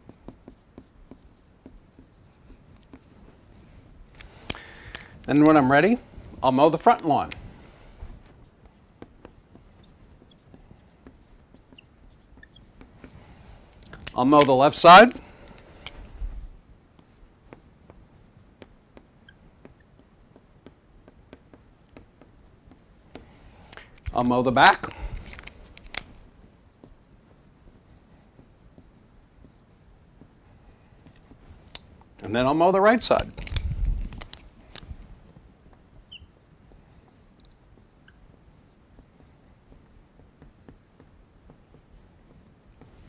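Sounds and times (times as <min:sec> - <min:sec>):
marker tapping and stroking whiteboard: 0:00.0 - 0:43.0.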